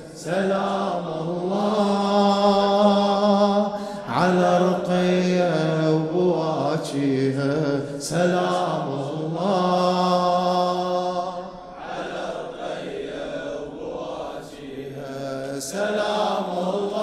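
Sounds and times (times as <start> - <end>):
man chanting a lament: 0.0 - 13.5
singer breathing: 3.7 - 4.1.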